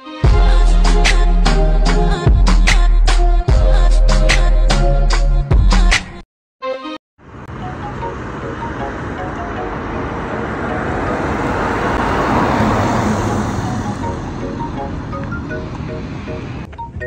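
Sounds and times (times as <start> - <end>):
car and road noise: 7.2 - 17.0.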